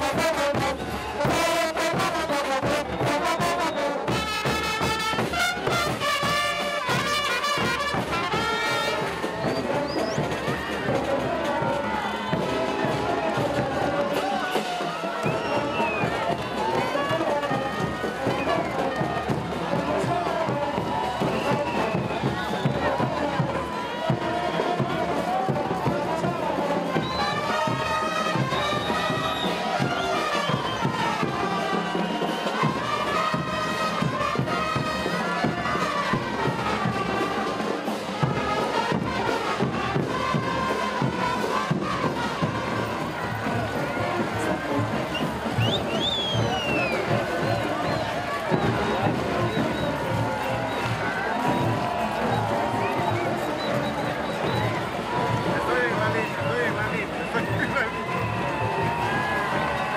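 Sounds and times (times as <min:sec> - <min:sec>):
crowd voices: 0:00.0 - 0:59.9
live folk band music: 0:00.0 - 0:59.9.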